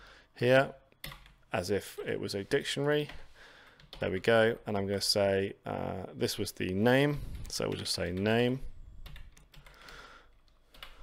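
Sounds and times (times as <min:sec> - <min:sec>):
computer keyboard typing: 0:01.0 - 0:01.4, 0:03.7 - 0:04.1, 0:09.0 - 0:11.0.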